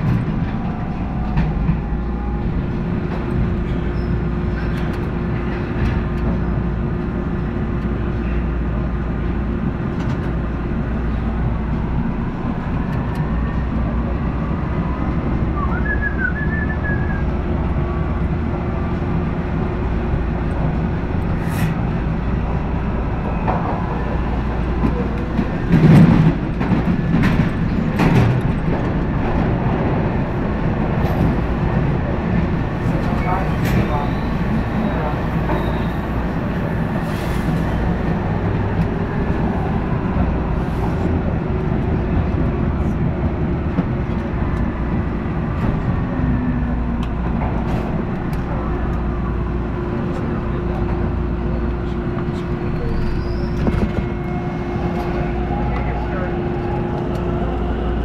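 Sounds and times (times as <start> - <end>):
subway train rumbling in tunnel: 0.0 - 58.0.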